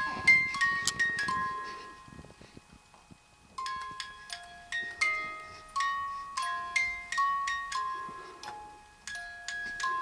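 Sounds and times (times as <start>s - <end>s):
music box lullaby chimes: 0.0s - 2.4s, 3.5s - 10.0s.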